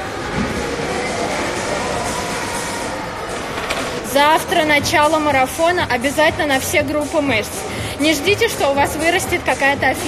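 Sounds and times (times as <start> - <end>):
cardio machine rolling: 0.0 - 5.0.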